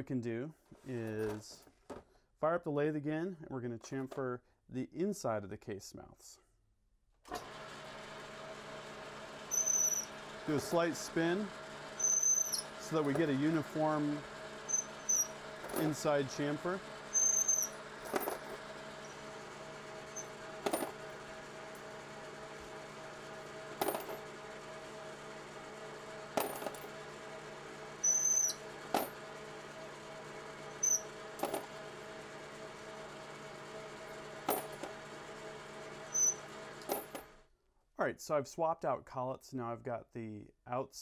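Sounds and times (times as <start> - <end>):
metal lathe humming: 7.3 - 37.2
short high squeaks: 9.5 - 10.2, 12.0 - 13.4, 14.6 - 15.9, 17.1 - 17.8, 20.1 - 20.4, 28.0 - 28.7, 30.7 - 31.2, 36.1 - 36.5.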